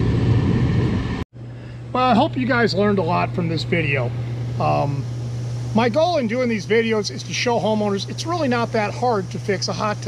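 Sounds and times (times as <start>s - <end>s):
low hum: 0.0s - 10.0s
pump motor humming: 1.4s - 10.0s.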